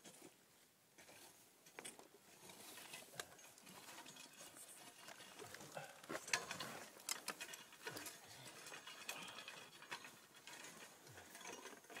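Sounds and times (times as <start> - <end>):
faint clicks and scrapes: 1.0 - 12.0.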